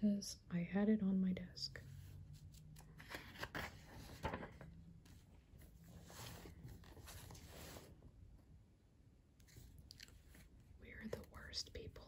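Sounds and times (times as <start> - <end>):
paper rustling: 2.4 - 8.0.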